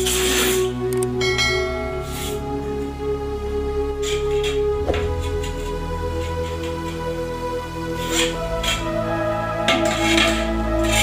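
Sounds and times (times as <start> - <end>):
background music: 0.0 - 11.0
ringing bell chime: 1.2 - 2.4.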